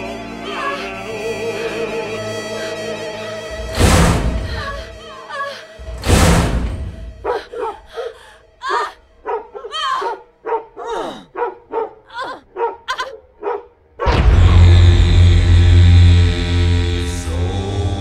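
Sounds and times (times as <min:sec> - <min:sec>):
dense passage with bass drone: 0:01.1 - 0:05.1, 0:05.8 - 0:07.3, 0:14.0 - 0:18.0.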